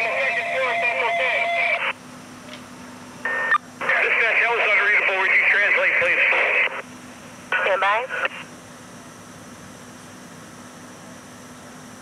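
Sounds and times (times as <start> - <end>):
garbled radio voice: 0.0 - 1.9, 3.8 - 6.8, 7.5 - 8.5
radio key-up burst: 3.3 - 6.8, 7.5 - 8.5.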